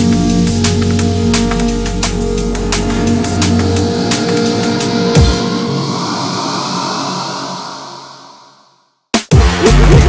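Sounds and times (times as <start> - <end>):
sustained synth wash: 1.0 - 8.9.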